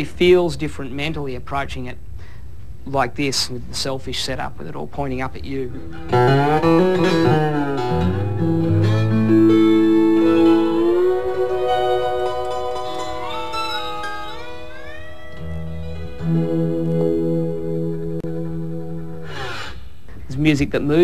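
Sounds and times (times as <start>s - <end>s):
slide acoustic guitar: 5.7s - 19.9s.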